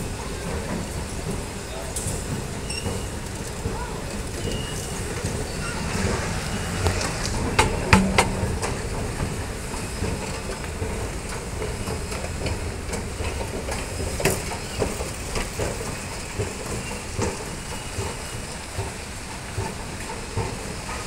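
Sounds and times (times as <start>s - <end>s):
escalator rumbling and clattering: 0.0s - 21.0s.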